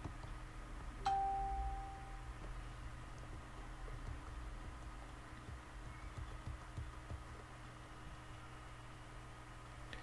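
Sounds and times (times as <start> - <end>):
ringing chime ding: 1.0 - 2.3.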